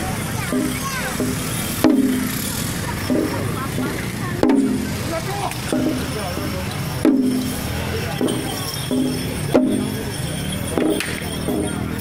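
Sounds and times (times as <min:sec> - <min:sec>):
light metallic jingling: 0:00.0 - 0:12.0
drum hits with ringing tone: 0:00.4 - 0:05.0, 0:05.6 - 0:12.0.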